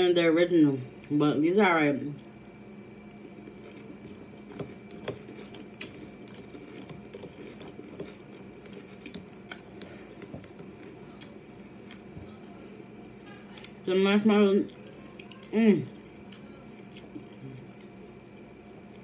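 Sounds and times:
chewing crunchy cereal: 2.1 - 12.2, 14.6 - 18.6.

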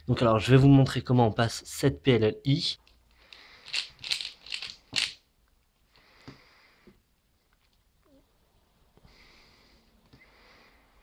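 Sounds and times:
plastic puzzle cube clacking: 3.6 - 5.2.

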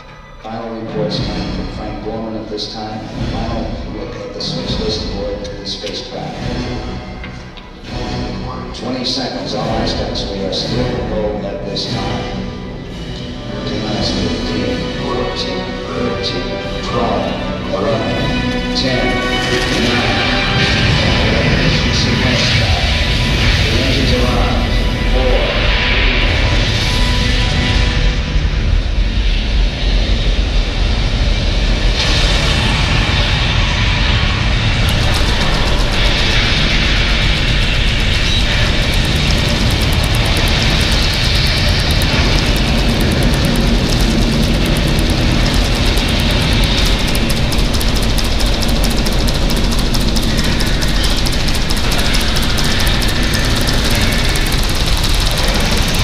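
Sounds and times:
music: 0.0 - 56.0.

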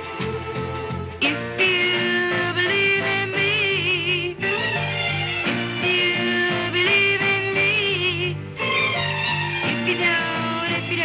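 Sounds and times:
soul band backing: 0.0 - 11.0
woman singing soul: 0.0 - 11.0.

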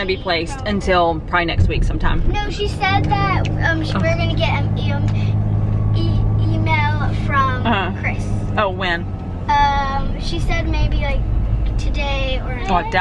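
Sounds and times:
vehicle hum: 0.0 - 13.0
voices talking: 0.0 - 13.0.

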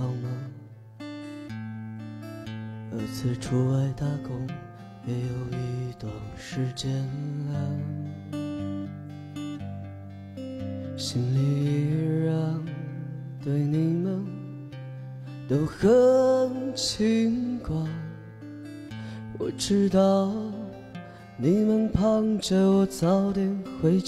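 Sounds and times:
man singing: 0.0 - 0.7, 2.9 - 8.8, 10.9 - 14.6, 15.5 - 18.4, 19.1 - 24.0
acoustic guitar: 0.0 - 24.0.

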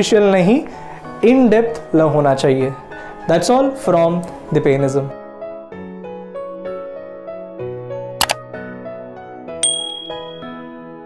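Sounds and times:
soft piano-like music: 0.0 - 11.0
bright bell ding: 9.6 - 10.7.

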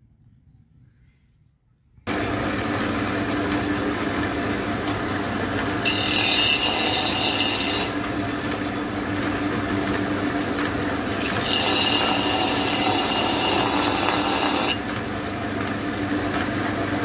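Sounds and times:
disc sander motor hum: 2.1 - 16.4
shrill wood sanding: 5.8 - 8.8, 11.1 - 14.8.

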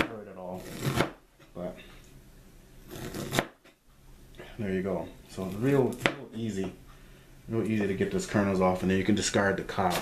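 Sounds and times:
knife scraping corn cob: 0.5 - 1.2, 2.9 - 3.6.

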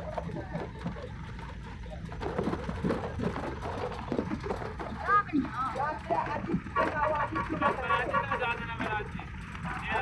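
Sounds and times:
vehicle interior rumble: 0.0 - 10.0.

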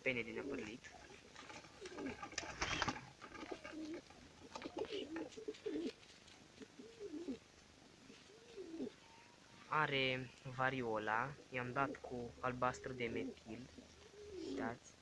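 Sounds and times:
pigeons cooing: 0.0 - 6.0, 6.6 - 9.0, 11.2 - 15.0
feathers rustling: 0.5 - 4.1, 4.7 - 7.4.

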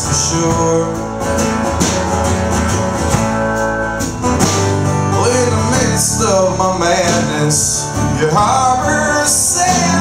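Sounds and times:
drum kit with cymbals: 0.0 - 10.0
electric bass: 0.0 - 10.0
strummed acoustic guitar: 0.0 - 10.0.

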